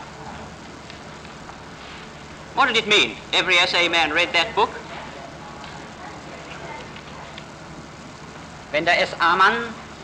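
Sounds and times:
faint low hum: 0.0s - 10.0s
steady recording hiss: 0.0s - 10.0s.

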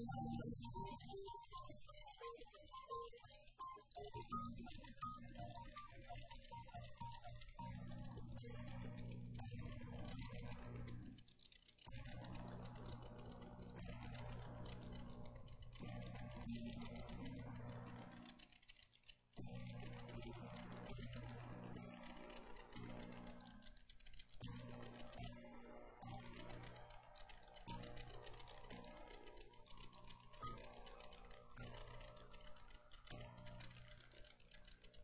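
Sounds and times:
digital piano played softly: 0.0s - 11.1s.

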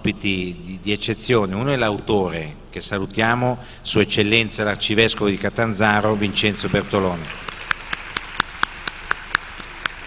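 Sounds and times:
sparse applause: 6.1s - 10.0s.

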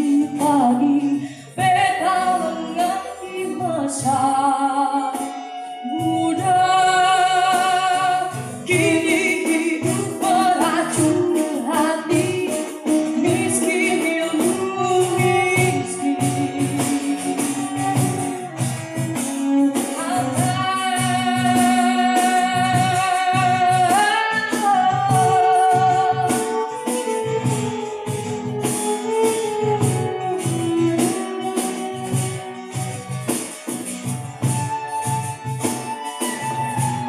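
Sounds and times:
woman singing slow melody: 0.0s - 18.0s, 20.0s - 26.7s
acoustic guitar: 0.0s - 37.0s
light percussion beat: 0.0s - 37.0s
violin: 0.0s - 37.0s.

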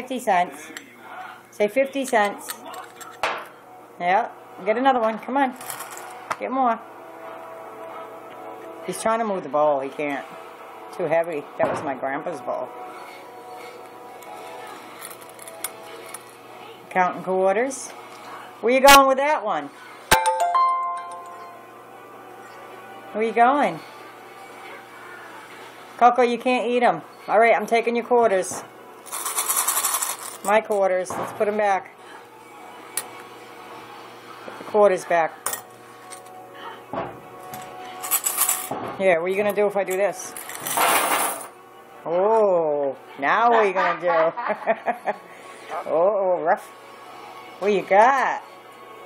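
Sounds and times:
coins clinking in plastic bowl: 5.6s - 6.2s, 14.9s - 16.3s, 29.0s - 30.7s, 38.0s - 38.7s, 40.3s - 41.5s.

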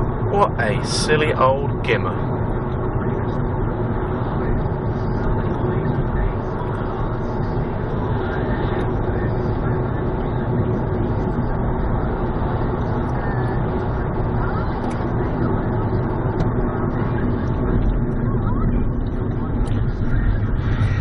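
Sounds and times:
car cabin road noise: 0.0s - 21.0s.

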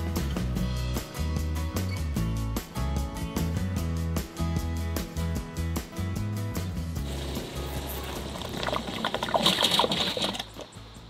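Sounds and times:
background music with steady beat: 0.0s - 8.6s
siphon hose watery hiss: 7.0s - 11.0s.

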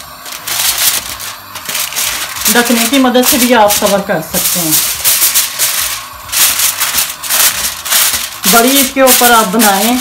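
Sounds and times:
aluminium foil crinkling: 0.0s - 10.0s.

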